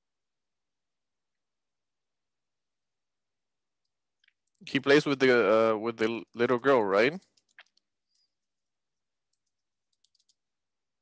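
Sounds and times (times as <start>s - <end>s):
computer keyboard keystrokes: 7.2s - 7.9s, 9.3s - 10.4s.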